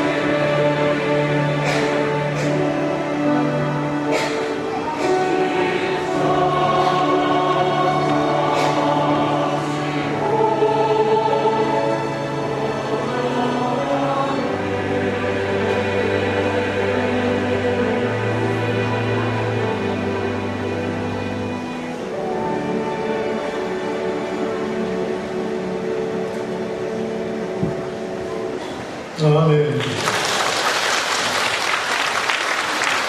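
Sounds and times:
choir singing held chords: 0.0 - 28.1.

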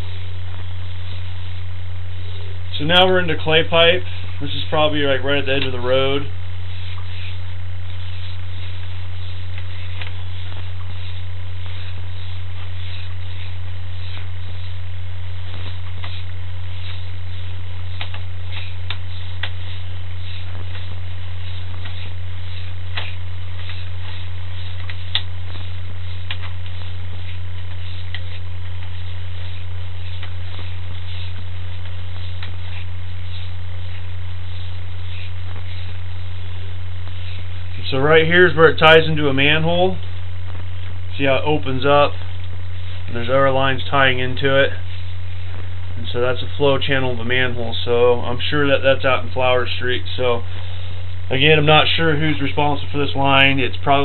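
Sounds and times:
low electrical hum: 0.0 - 54.0.

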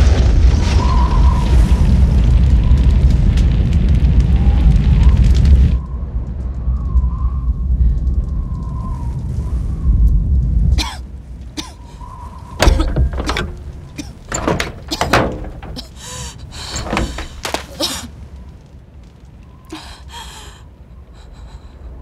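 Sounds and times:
deep booming rumble with hiss: 12.6 - 17.7
sharp impacts: 12.6 - 18.0.

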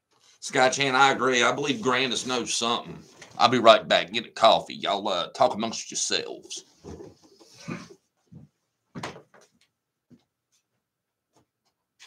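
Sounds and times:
household knocks and bumps: 8.3 - 9.5.

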